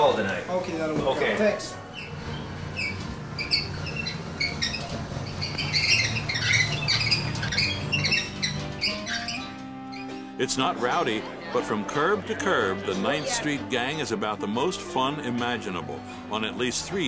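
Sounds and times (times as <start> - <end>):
music: 0.0 - 17.0
bed wheels and frame squeaking: 1.0 - 10.4.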